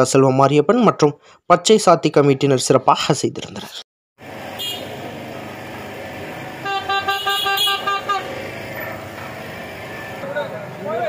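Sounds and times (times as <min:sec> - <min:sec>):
street crowd hubbub: 0:04.4 - 0:11.0
horn held tone: 0:04.6 - 0:05.0, 0:06.6 - 0:08.3.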